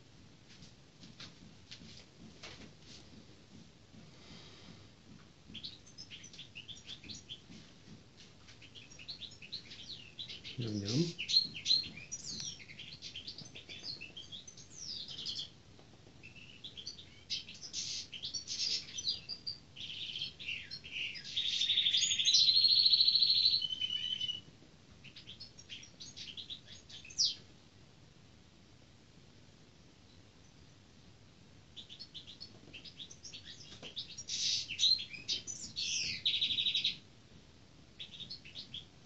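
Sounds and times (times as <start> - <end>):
goldfinch twittering song: 8.6 - 15.5, 16.2 - 24.4, 31.8 - 37.0.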